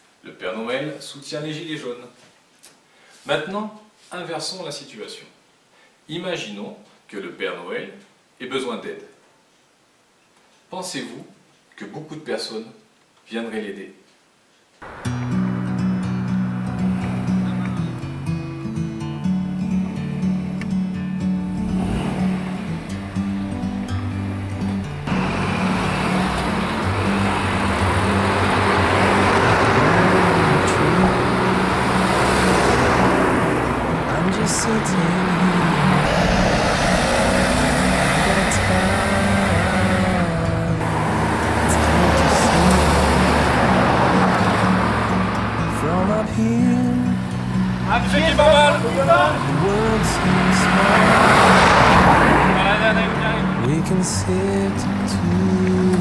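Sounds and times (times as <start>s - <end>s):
background music: 14.8s - 56.0s
cars passing: 14.8s - 56.0s.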